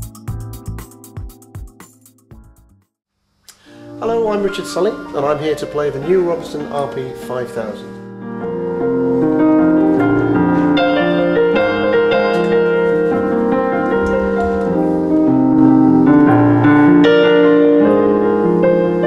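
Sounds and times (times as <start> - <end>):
digital piano playing chords: 0.0 - 2.8, 3.6 - 19.0.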